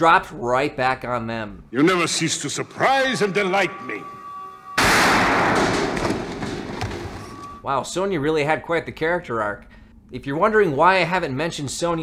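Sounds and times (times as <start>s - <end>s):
pistol shot: 4.8s - 6.7s.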